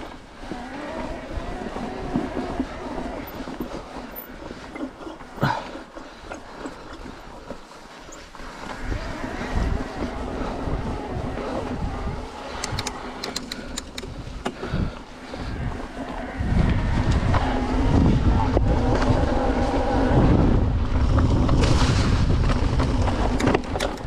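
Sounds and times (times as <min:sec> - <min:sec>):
tyres crunching on gravel: 0:00.0 - 0:13.2
wind buffeting microphone: 0:00.0 - 0:24.0
sharp clicks: 0:12.5 - 0:14.6.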